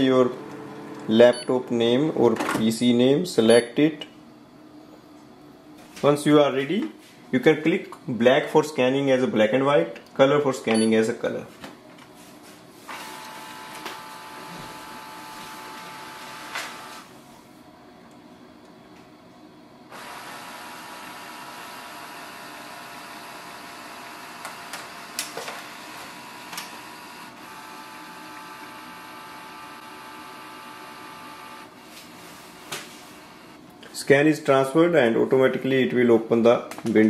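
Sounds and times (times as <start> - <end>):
scanner motor whine: 0.0 - 2.2, 12.9 - 17.1, 19.9 - 33.6
scanner click: 10.7 - 11.0.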